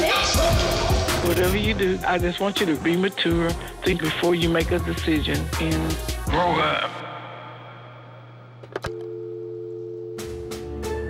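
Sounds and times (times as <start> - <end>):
two-note telephone dial tone: 8.8 - 10.2.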